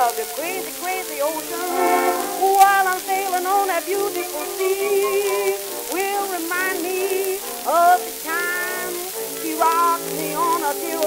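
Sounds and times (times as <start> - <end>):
old record of song with orchestra: 0.0 - 11.0
record surface hiss: 0.0 - 11.0.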